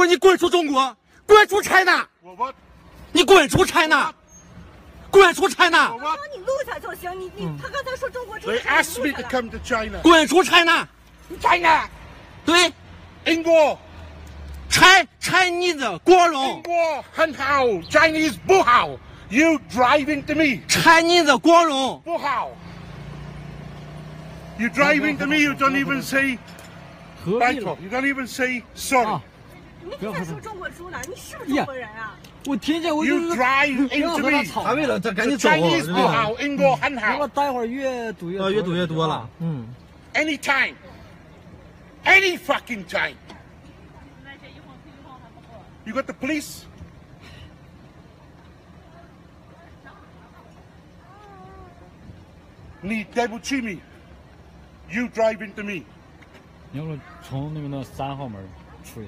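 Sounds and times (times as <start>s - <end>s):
man shouting: 0.0s - 2.2s, 3.1s - 4.2s, 5.1s - 6.3s, 14.7s - 22.6s, 32.6s - 37.2s
car engine idling: 0.0s - 59.0s.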